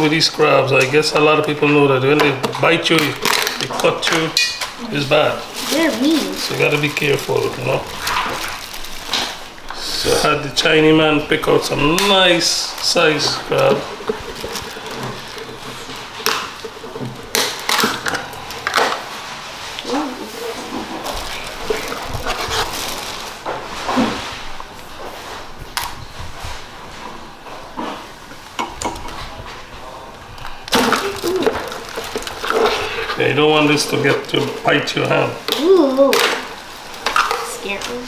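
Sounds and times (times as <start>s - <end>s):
plastic bag crinkling: 2.8s - 24.3s, 30.4s - 38.0s.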